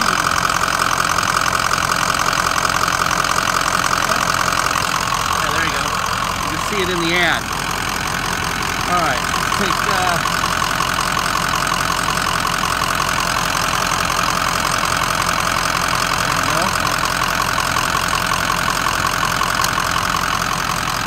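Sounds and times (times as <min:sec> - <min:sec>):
diesel engine idling: 0:00.0 - 0:21.0.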